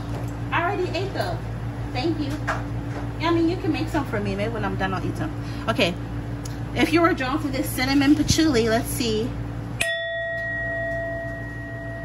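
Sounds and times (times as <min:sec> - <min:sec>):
metal singing bowl ringing: 0:09.8 - 0:12.0.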